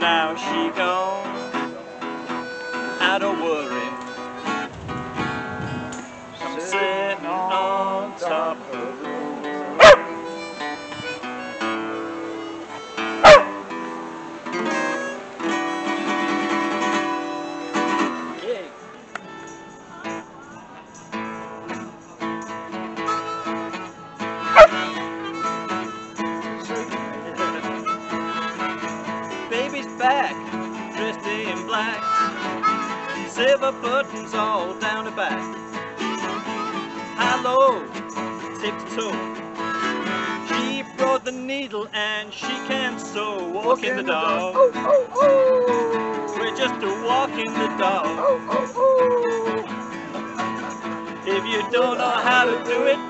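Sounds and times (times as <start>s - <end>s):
acoustic guitars and harmonica blues: 0.0s - 53.0s
dog barking loudly: 9.8s - 10.1s, 13.2s - 13.6s, 24.6s - 24.8s, 44.5s - 45.7s, 48.2s - 49.4s.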